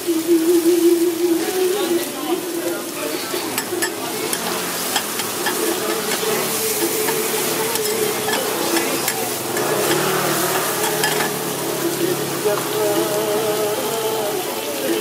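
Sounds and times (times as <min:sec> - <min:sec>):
food sizzling on a griddle: 0:00.0 - 0:15.0
metal spatulas scraping iron: 0:03.2 - 0:11.6.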